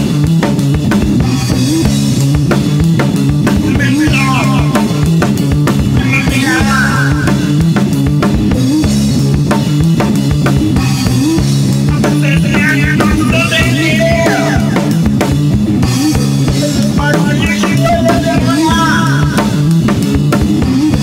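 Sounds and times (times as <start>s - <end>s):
bending lead melody: 0.0s - 21.0s
drum kit beat: 0.0s - 21.0s
repeating bass line: 0.0s - 21.0s.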